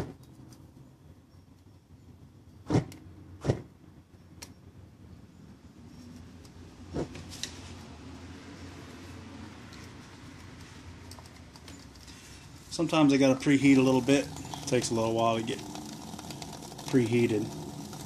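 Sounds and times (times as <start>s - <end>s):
sharp thumps: 2.7s - 3.7s
low steady burning noise: 6.4s - 18.0s
stove flaring up: 12.0s - 18.0s.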